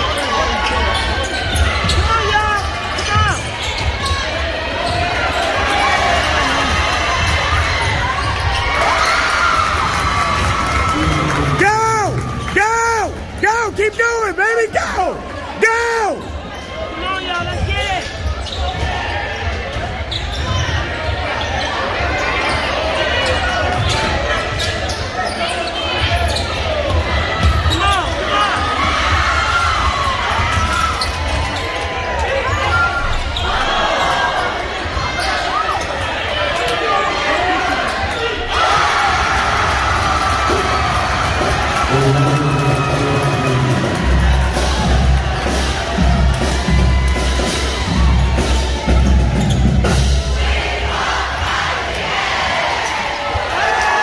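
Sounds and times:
crowd voices and shouting: 0.0s - 54.0s.

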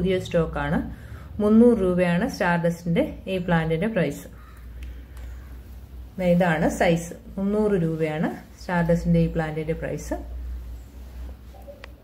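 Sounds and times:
low steady background hum: 0.0s - 12.0s.

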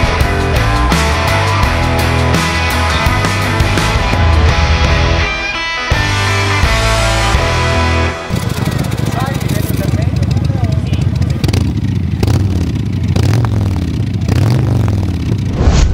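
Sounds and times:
rock music: 0.0s - 9.3s
motorcycle engines revving: 6.4s - 15.6s.

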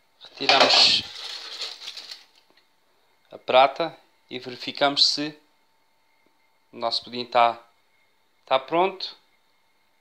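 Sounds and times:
aluminium foil crinkling: 0.4s - 2.6s.

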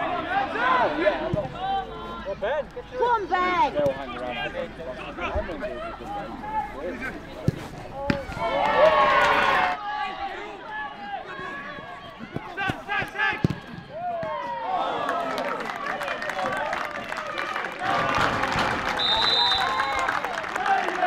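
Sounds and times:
players shouting: 0.0s - 21.0s
spectators cheering: 8.3s - 21.0s
referee's whistle: 19.0s - 20.0s.

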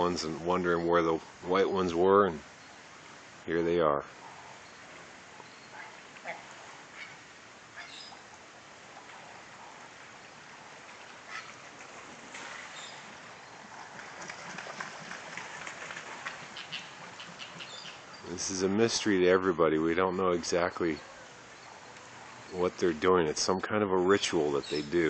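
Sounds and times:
steady outdoor hiss: 0.0s - 25.0s
waterbird calls: 4.1s - 25.0s.

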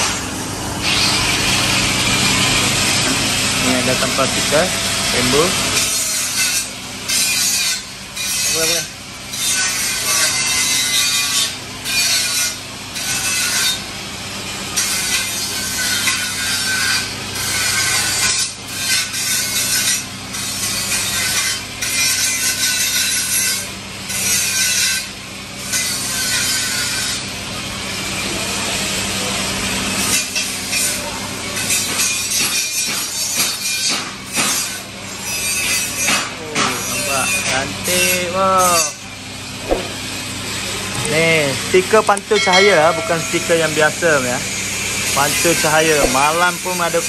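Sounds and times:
tool scraping over sticker: 45.0s - 47.0s.

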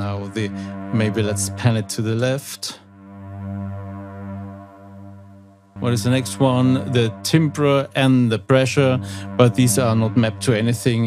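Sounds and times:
long low synth note: 0.0s - 11.0s.

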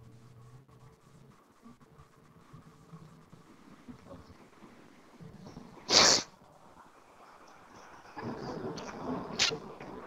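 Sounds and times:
sharp burst of hissing: 5.9s - 6.3s.

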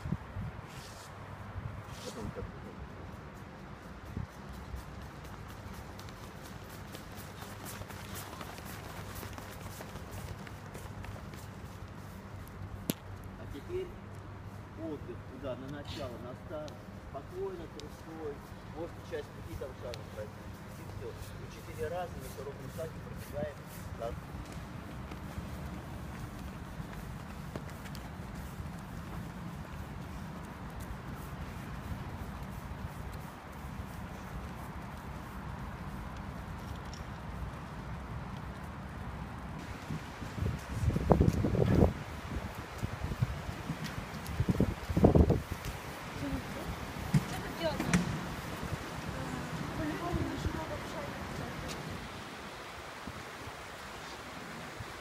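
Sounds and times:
running footsteps on concrete: 0.0s - 14.8s, 15.6s - 54.0s.

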